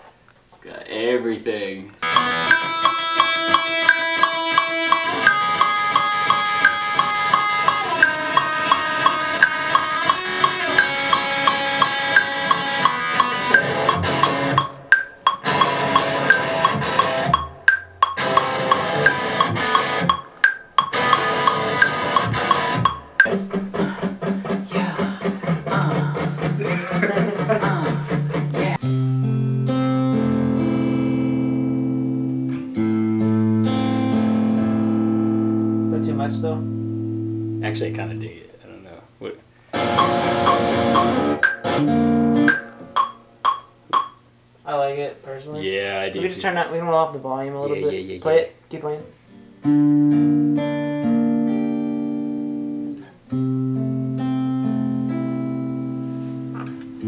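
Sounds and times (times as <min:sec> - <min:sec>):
steady drum beat: 0:02.0 - 0:28.8, 0:39.9 - 0:41.7
electric guitar: 0:02.0 - 0:37.8, 0:39.7 - 0:43.4, 0:49.2 - 0:57.0.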